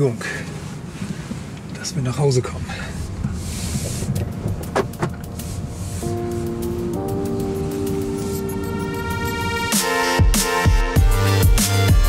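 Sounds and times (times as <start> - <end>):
car cabin rumble: 0.0 - 9.8
background music with held tones: 4.1 - 12.0.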